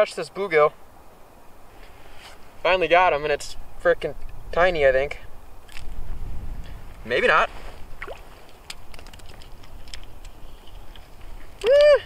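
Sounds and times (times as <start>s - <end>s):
wind rumble on microphone: 0.9s - 12.0s.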